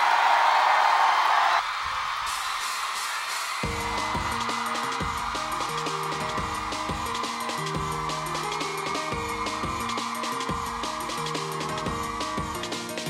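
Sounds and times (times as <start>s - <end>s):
audience cheering: 0.0s - 13.0s
band song with keyboard riff: 3.6s - 13.0s.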